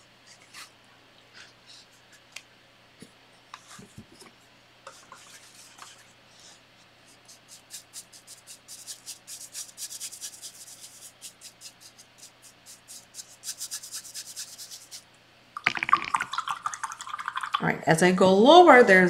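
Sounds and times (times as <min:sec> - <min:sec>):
paintbrush scrubbing canvas: 0:04.9 - 0:15.0
person speaking: 0:17.6 - 0:19.0.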